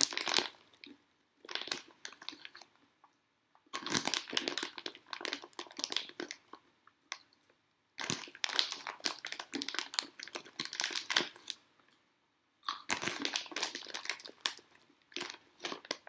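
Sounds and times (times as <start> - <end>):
dense crinkling and crackling: 0.0 - 11.6, 12.8 - 16.0.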